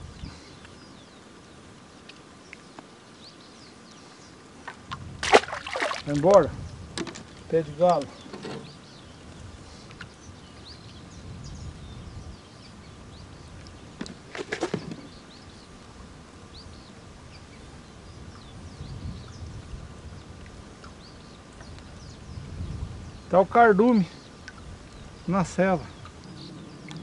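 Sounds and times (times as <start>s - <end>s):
low outdoor rumble: 0.0s - 27.0s
small birds chirping: 0.0s - 27.0s.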